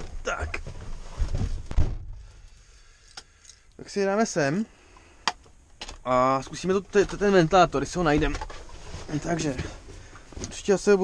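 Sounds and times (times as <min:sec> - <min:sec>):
dull thumps: 0:00.0 - 0:02.3
rustling handling noise: 0:06.0 - 0:11.0.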